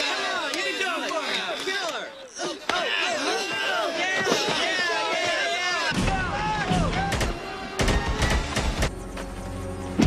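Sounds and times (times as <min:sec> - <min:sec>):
voices shouting: 0:00.0 - 0:08.6
low film music: 0:06.0 - 0:10.0.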